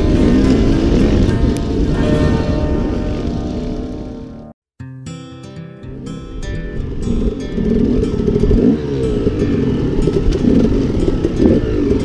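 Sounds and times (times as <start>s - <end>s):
dirt bike engine revving: 0.0s - 4.5s, 6.2s - 12.0s.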